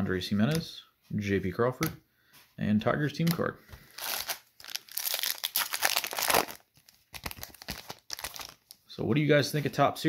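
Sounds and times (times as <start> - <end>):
foil wrapper tearing and crinkling: 3.9 - 8.8.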